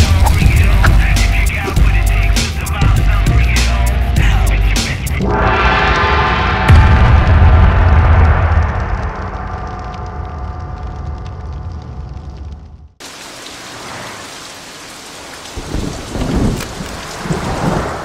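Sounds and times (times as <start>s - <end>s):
steady rain: 0.0s - 3.4s, 7.6s - 18.0s
thunder rumbles: 5.3s - 13.0s, 15.6s - 18.0s.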